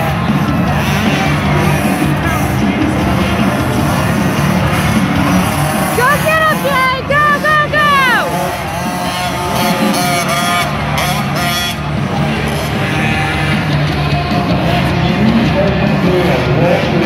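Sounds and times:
dirt bike engines revving: 0.0 - 17.0
music: 0.0 - 17.0
voices: 0.0 - 17.0.

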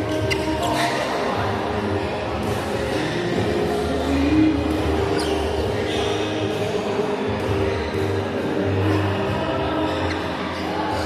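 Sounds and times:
steady music: 0.0 - 11.0.

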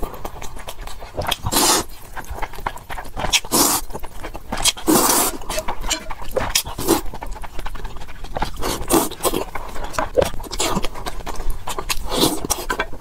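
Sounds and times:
slurping and chewing noodles: 0.0 - 13.0.

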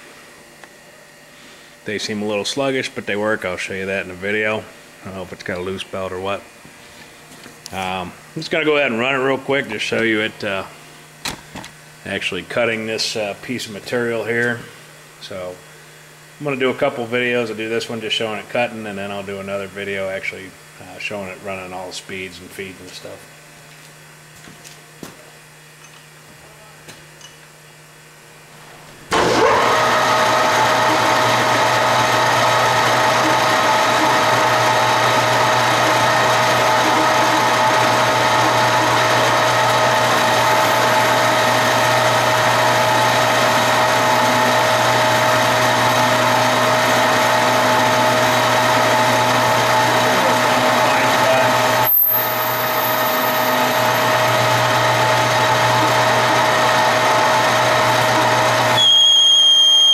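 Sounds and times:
lathe running with a whine: 29.1 - 59.9.

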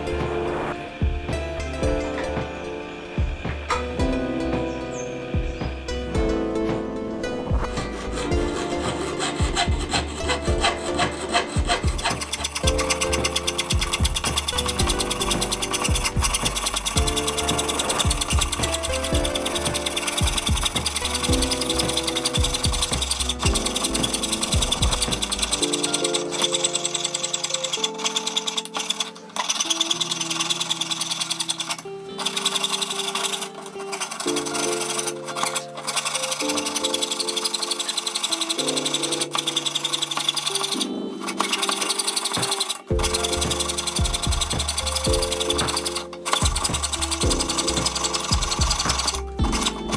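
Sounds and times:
background music: 0.0 - 49.9
saw rasping on metal plate: 7.5 - 49.9.

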